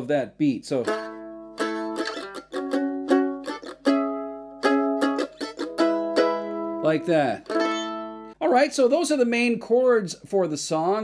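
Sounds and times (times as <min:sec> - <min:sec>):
mandolin strumming chords: 0:00.7 - 0:08.4.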